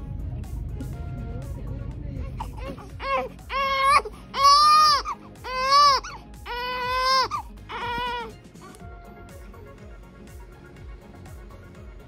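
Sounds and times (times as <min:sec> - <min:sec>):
newborn baby crying: 0:02.2 - 0:08.4.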